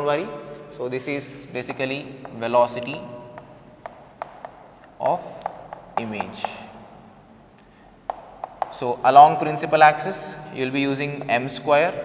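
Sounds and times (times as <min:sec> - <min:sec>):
chalk scratching on board: 0:01.5 - 0:11.7
chalk tapping on board: 0:01.6 - 0:10.3, 0:10.9 - 0:11.7.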